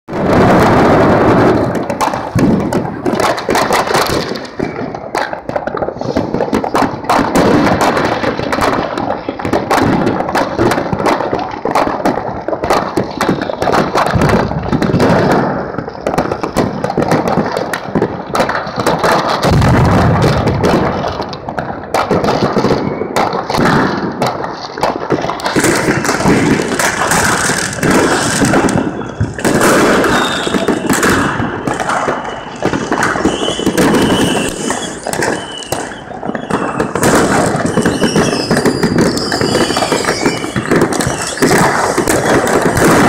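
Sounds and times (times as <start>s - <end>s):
deep fireworks booming: 0.1s - 43.0s
fireworks and firecrackers banging: 0.1s - 43.0s.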